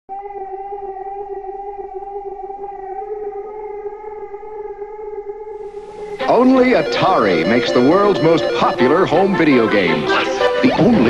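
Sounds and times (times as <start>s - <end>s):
steady siren-like tone: 0.1s - 11.0s.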